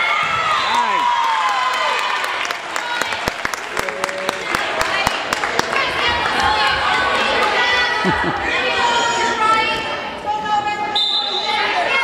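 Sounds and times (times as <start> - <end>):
hand clapping and applause: 0.8 - 6.4.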